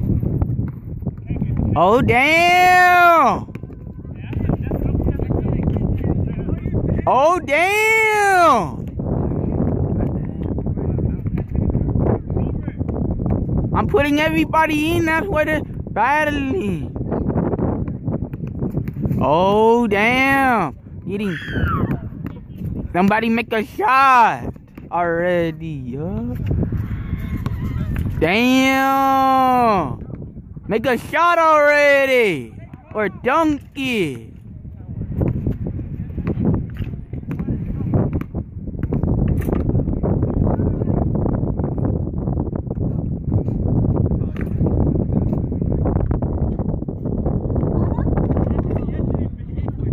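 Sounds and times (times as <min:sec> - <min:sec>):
wind buffeting microphone: 0:00.0 - 0:49.9
basketball taps on asphalt: 0:00.4 - 0:01.8, 0:03.5 - 0:04.6, 0:17.5 - 0:19.2, 0:36.2 - 0:40.4.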